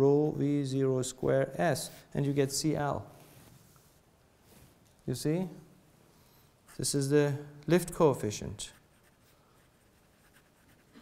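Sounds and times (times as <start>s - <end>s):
pen scratching on paper: 8.7s - 11.0s.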